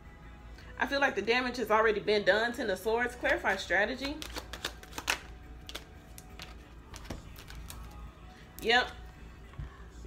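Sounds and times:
cards being shuffled: 4.0s - 8.0s.

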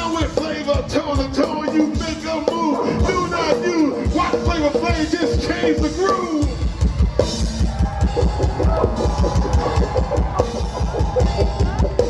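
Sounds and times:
person rapping: 0.0s - 6.4s
drum kit solo: 0.0s - 12.0s.

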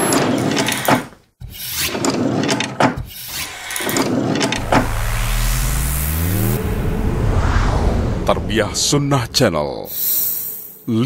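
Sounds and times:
low rising tone: 3.4s - 9.2s
whooshes: 3.4s - 9.2s.

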